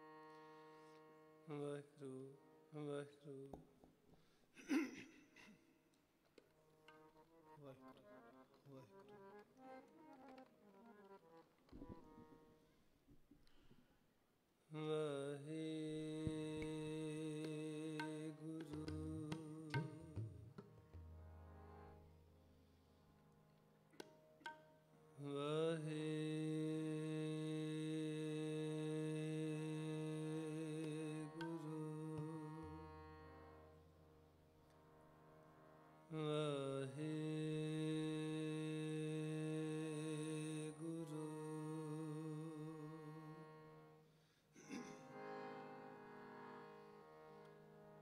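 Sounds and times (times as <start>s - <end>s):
harmonium melody: 0.0s - 3.1s, 6.4s - 12.8s, 15.7s - 48.0s.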